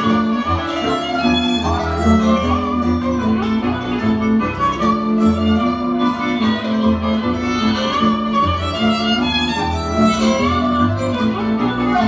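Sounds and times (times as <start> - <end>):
bass line: 0.0 - 12.0
fiddle playing lead: 0.0 - 12.0.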